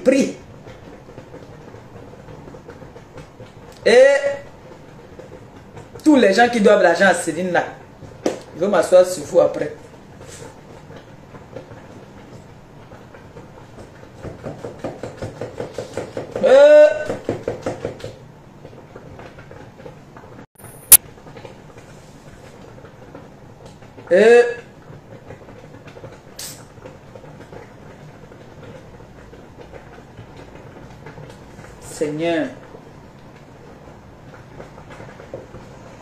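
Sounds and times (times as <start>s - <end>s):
person speaking: 0.0s - 0.4s, 3.8s - 4.5s, 6.0s - 7.8s, 8.5s - 9.8s, 31.8s - 32.6s.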